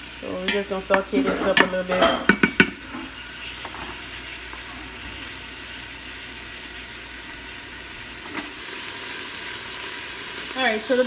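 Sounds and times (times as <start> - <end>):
sausage sizzling in a pot: 0.0 - 11.0.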